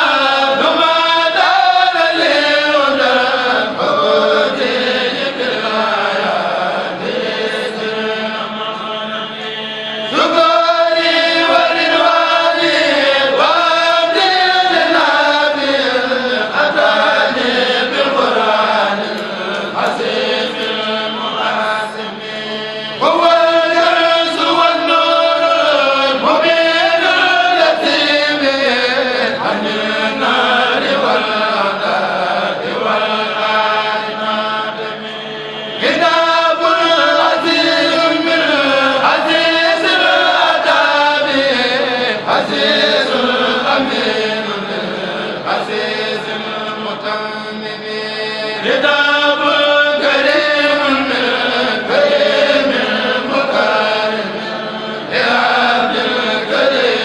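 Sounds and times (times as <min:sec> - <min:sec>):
men chanting into microphones: 0:00.0 - 0:57.0.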